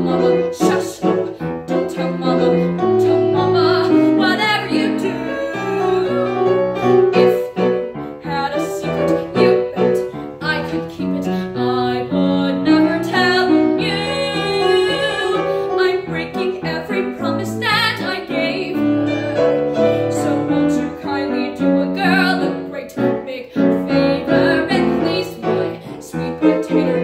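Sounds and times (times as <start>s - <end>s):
grand piano accompaniment: 0.0s - 27.0s
woman singing with vibrato: 0.0s - 27.0s.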